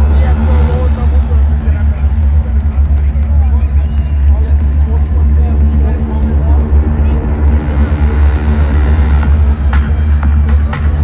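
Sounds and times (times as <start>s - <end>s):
crowd voices and shouts: 0.0s - 11.0s
deep synth bass drone: 0.0s - 11.0s.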